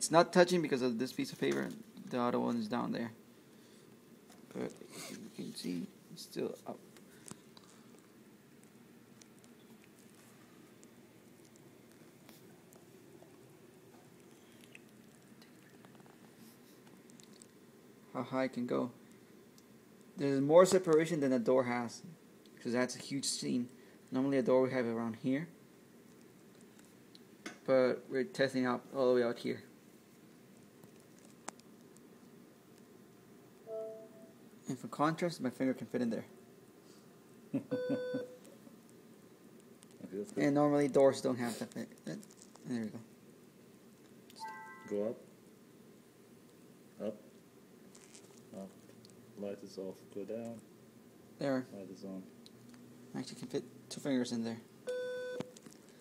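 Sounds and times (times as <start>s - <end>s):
short electronic beep: 33.7s - 34.3s, 44.4s - 45.0s
person laughing: 37.5s - 38.3s.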